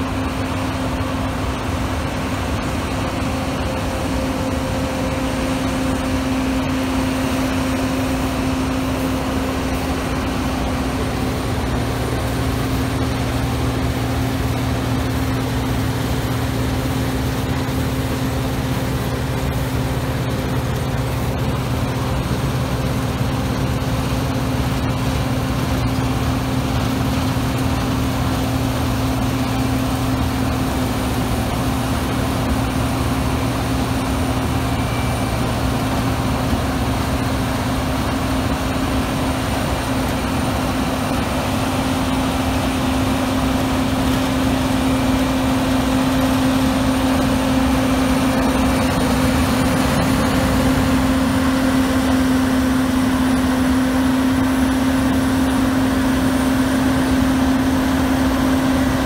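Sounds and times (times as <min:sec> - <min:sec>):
combine harvester running: 0:00.0 - 0:59.0.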